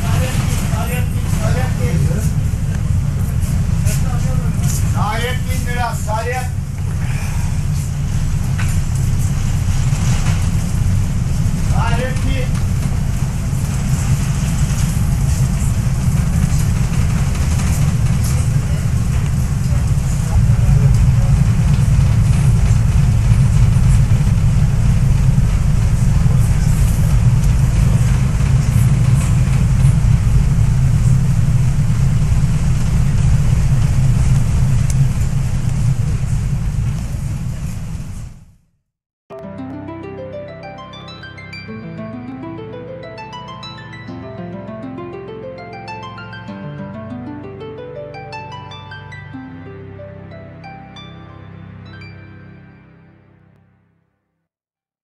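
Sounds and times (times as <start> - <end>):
ferry engine rumble: 0.0 - 38.7
faint voices: 25.2 - 30.3.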